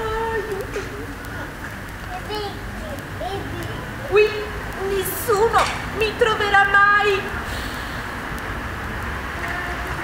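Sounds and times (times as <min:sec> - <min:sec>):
even hiss: 0:07.4 - 0:09.2.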